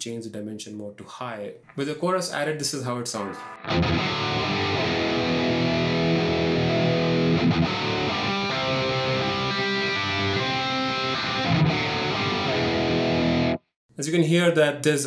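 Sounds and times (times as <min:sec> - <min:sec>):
electric guitar strumming chords: 0:03.2 - 0:13.6.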